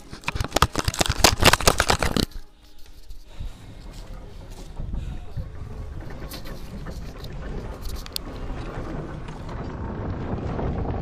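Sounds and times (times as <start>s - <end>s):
low rumbling wind: 3.1s - 11.0s.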